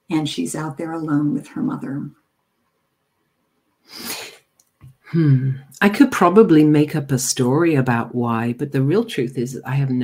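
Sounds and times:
person breathing: 3.8 - 4.4.

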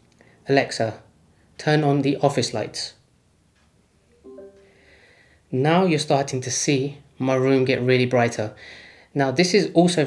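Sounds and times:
smart speaker short chime: 4.3 - 4.8.

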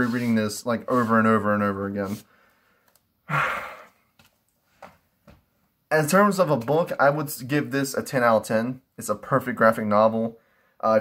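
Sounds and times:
man sighing: 3.2 - 4.0.

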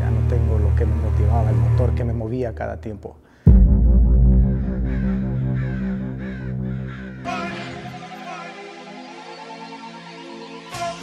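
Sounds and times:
low synth drone: 3.5 - 7.3
crow cawing: 4.5 - 8.5.

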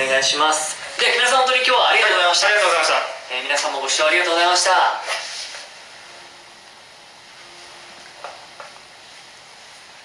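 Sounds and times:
faint hum: 0.0 - 10.0
low background hiss: 5.6 - 10.0.

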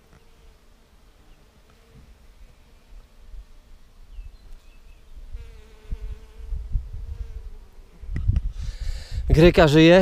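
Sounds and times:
bee humming close by: 0.0 - 8.2
honeybees buzzing: 0.0 - 8.2.

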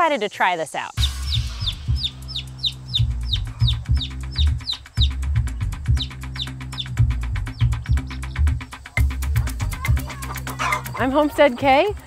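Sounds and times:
chick peeping: 1.0 - 11.8
background music with pulsing bass: 1.0 - 12.0.

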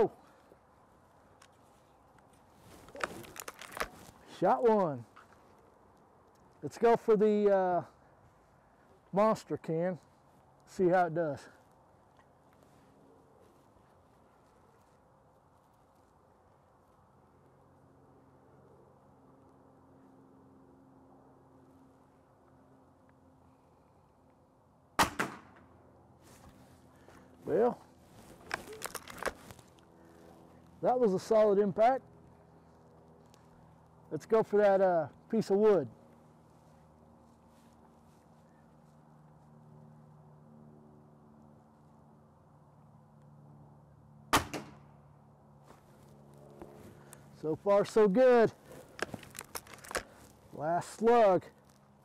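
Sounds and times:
air rifle shot: 25.0 - 25.6, 44.3 - 44.8.

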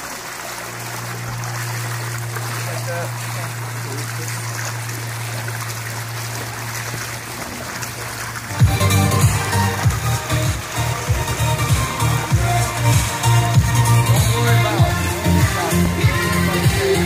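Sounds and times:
constant low hum: 0.0 - 17.0
pool water trickling: 0.0 - 17.0
electronic dance music: 8.5 - 17.0.

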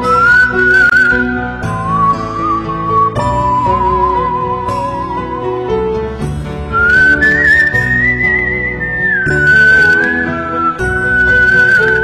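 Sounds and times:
instrumental music backing: 0.0 - 12.0
whistled melody with vibrato: 0.0 - 12.0.

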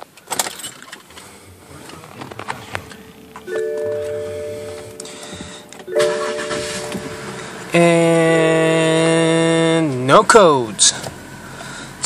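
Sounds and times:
multi-note electronic chime: 2.9 - 7.8.

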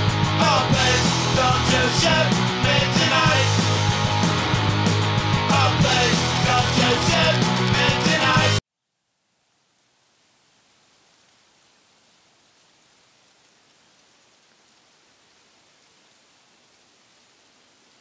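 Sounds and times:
faint steady hiss: 8.7 - 18.0.

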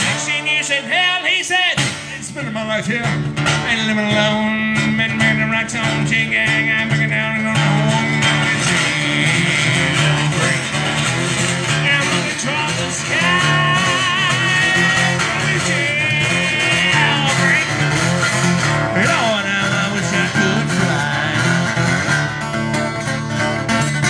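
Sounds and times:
man singing: 0.0 - 22.5
strummed acoustic guitar: 0.0 - 24.0.

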